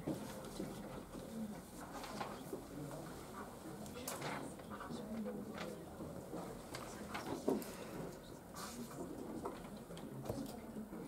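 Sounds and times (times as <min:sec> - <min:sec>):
faint low murmuring: 0:00.0 - 0:11.0.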